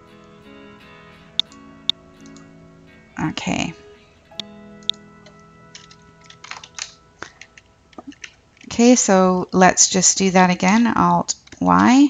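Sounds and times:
faint sustained tones: 0:00.0 - 0:09.2
computer keyboard typing: 0:05.7 - 0:08.7.

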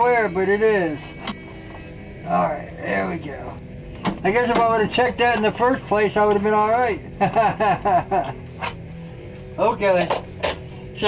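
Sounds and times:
man laughing: 0:07.0 - 0:08.5.

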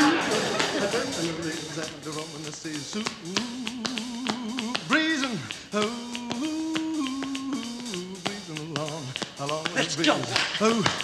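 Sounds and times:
tap shoe clicks: 0:03.0 - 0:11.0.

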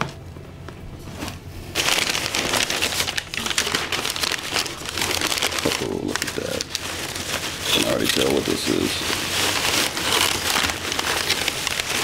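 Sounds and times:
crumpled newspaper rustling: 0:01.0 - 0:12.0.

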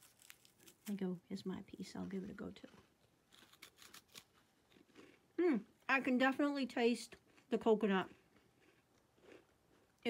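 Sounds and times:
chewing cookie: 0:02.5 - 0:05.4, 0:07.1 - 0:10.0.

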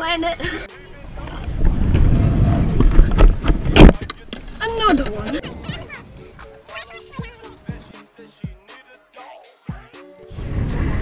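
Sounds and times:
scooter wheels rumbling on concrete: 0:01.1 - 0:06.2.

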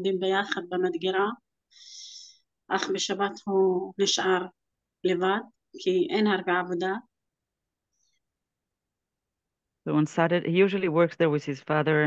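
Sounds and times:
woman speaking: 0:00.0 - 0:01.4, 0:02.0 - 0:07.1, 0:09.9 - 0:12.0.

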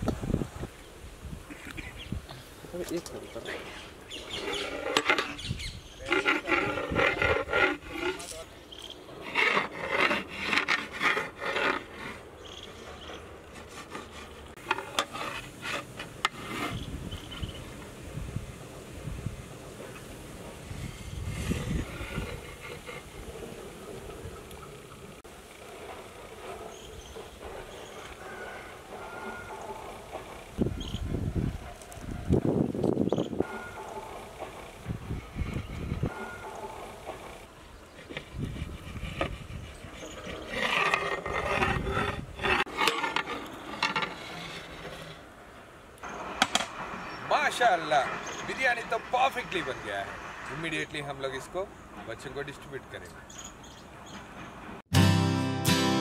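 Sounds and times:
metal ladle scraping in metal pot: 0:04.2 - 0:08.4, 0:38.5 - 0:45.2.

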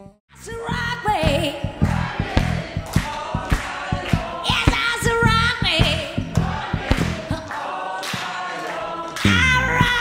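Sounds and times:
electric bass guitar plucking: 0:00.0 - 0:07.4, 0:09.3 - 0:10.0
woman singing: 0:00.3 - 0:01.9, 0:03.0 - 0:06.3, 0:09.2 - 0:10.0.

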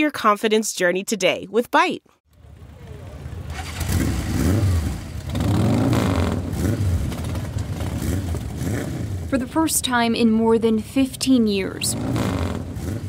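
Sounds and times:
motorcycle engines revving: 0:02.3 - 0:13.0.

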